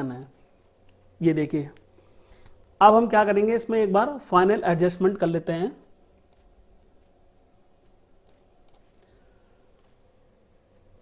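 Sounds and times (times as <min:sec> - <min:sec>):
computer mouse clicks: 0:00.0 - 0:01.0, 0:06.1 - 0:07.1, 0:07.8 - 0:10.0.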